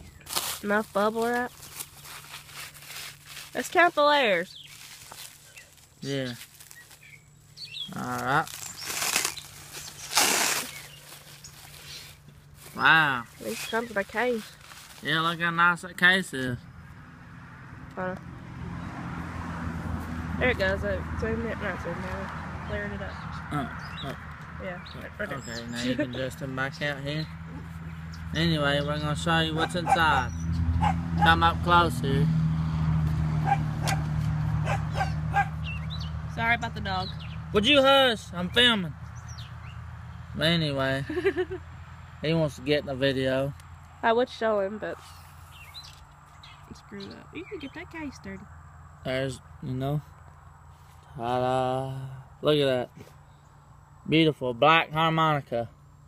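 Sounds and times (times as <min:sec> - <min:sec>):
bubble wrap crinkling: 0:00.1 - 0:07.2, 0:07.9 - 0:15.3
small dog yapping: 0:29.6 - 0:31.0, 0:33.4 - 0:35.6.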